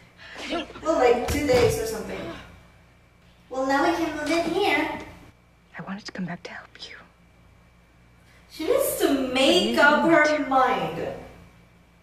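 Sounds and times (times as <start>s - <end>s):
person whispering: 5.9s - 7.2s.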